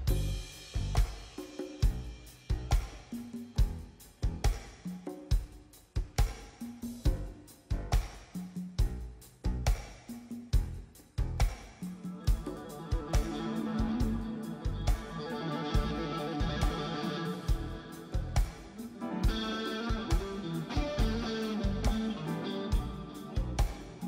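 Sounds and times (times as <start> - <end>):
drums with kick-drum beat: 0.0 - 24.0
electric guitar: 12.0 - 24.0.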